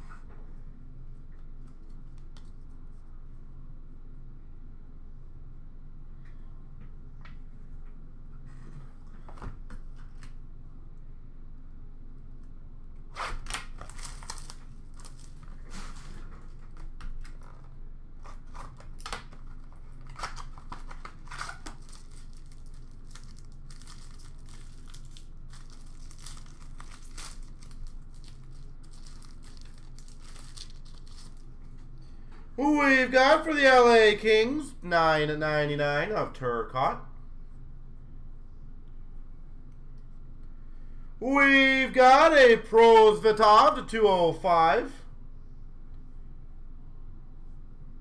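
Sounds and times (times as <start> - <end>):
low steady hum: 0.0 - 48.0
wrappers tearing and crinkling: 13.1 - 16.0, 18.2 - 31.5
cards being handled: 13.2 - 31.4.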